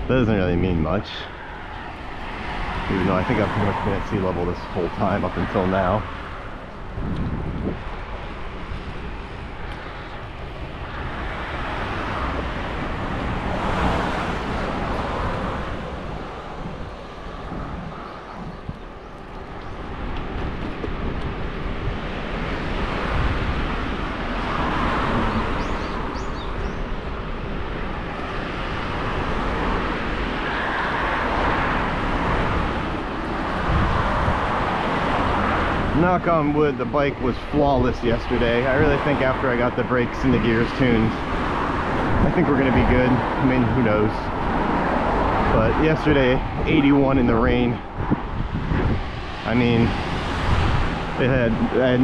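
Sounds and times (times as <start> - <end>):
cars rushing past: 0.0 - 52.0
wind on microphone: 0.0 - 52.0.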